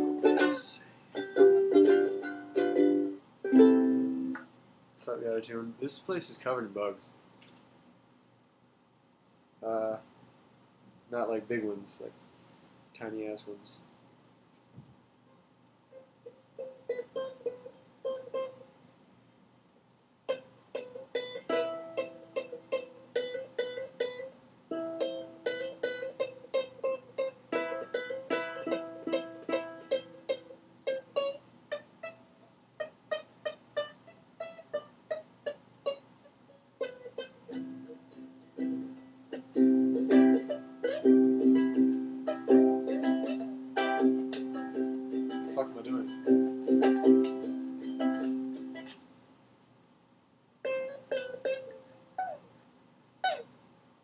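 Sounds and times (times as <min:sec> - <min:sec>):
ukulele picking and chords: 0:00.0 - 0:04.5, 0:16.2 - 0:18.7, 0:20.3 - 0:32.2, 0:32.8 - 0:36.1, 0:36.8 - 0:49.0, 0:50.6 - 0:52.4.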